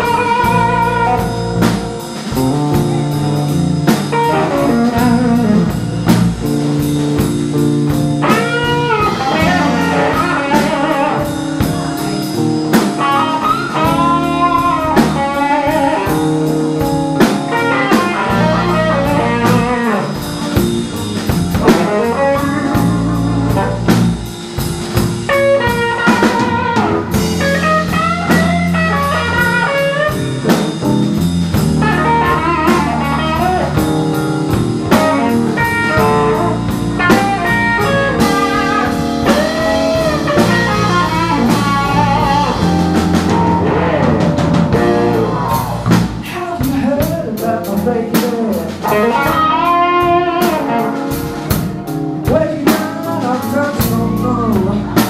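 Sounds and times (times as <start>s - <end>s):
bass guitar: 0.0s - 55.0s
drum kit beat: 0.0s - 55.0s
electric guitar lead: 0.0s - 55.0s.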